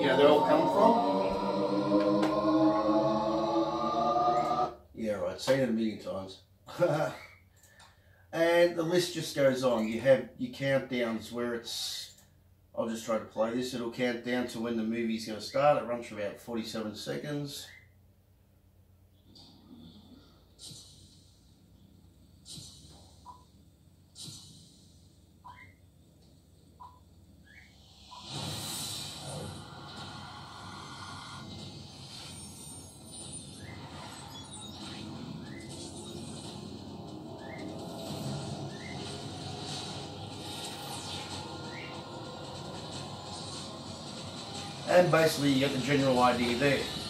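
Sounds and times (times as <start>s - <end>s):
music and effects bed: 0.0s - 4.7s
short rising blips: 0.0s - 4.8s.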